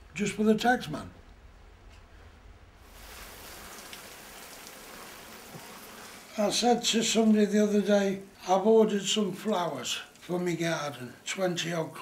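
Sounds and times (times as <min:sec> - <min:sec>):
hose spraying water: 0:02.8 - 0:07.2.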